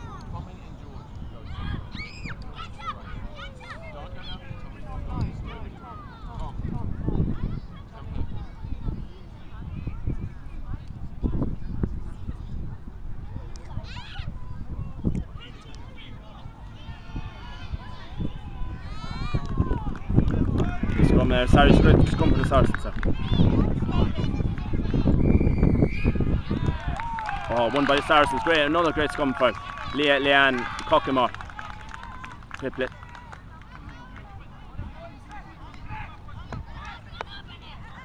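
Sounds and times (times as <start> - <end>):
wind rumble on microphone: 0.0 - 30.0
people calling and chattering: 0.0 - 38.0
players shouting: 26.0 - 38.0.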